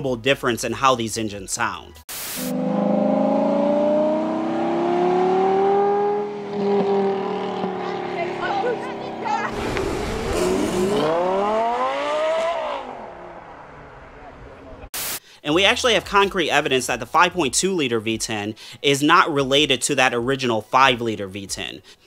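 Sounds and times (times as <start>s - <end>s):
sports car engine revving: 2.4s - 14.6s
sports car engine pulling away: 2.4s - 14.9s.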